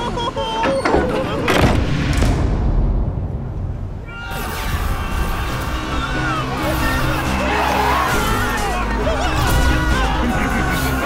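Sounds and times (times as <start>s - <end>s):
background music: 0.0s - 11.0s
cartoon voices crying out: 4.1s - 11.0s.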